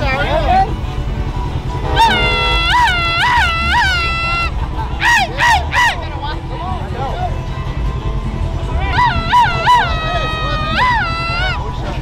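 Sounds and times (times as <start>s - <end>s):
steady low rumble: 0.0s - 12.0s
high-pitched whoops: 2.0s - 6.0s, 8.8s - 11.7s.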